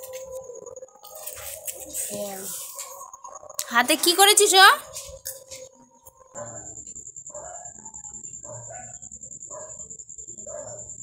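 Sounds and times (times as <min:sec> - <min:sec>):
dog barking: 0:06.4 - 0:09.8, 0:10.4 - 0:11.0.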